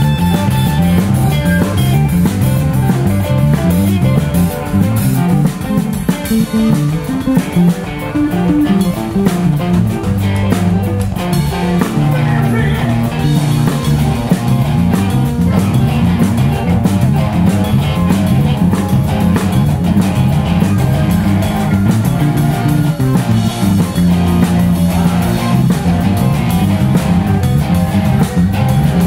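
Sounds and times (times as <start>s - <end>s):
rock band playing live: 0.0s - 29.0s.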